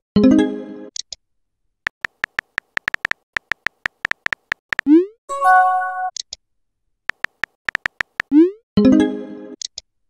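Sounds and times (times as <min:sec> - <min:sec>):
phone keyboard typing clicks: 0:01.9 - 0:04.9, 0:07.1 - 0:08.3.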